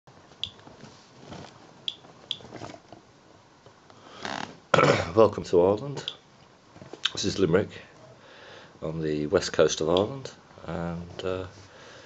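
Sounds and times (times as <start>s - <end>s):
geiger counter clicking: 1.9s - 2.4s.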